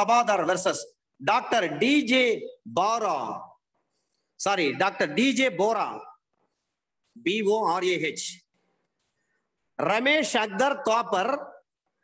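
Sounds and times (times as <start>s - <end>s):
man speaking: 0.0s - 3.6s, 4.4s - 6.2s, 7.0s - 8.6s, 9.7s - 11.8s.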